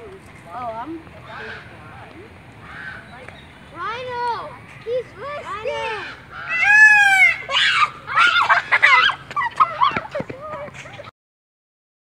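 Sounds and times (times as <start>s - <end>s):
children shouting excitedly: 3.7s - 11.1s.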